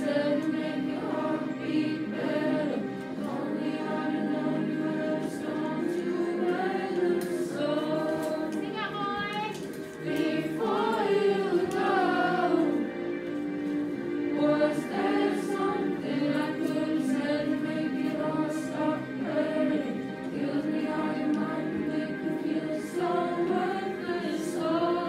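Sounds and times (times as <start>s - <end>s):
choir singing pop song: 0.0s - 13.2s, 14.1s - 25.0s
karaoke backing track: 0.0s - 25.0s.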